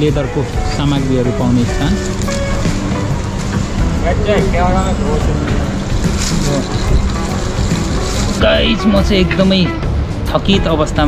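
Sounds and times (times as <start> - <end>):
street low rumble: 0.0 - 11.0.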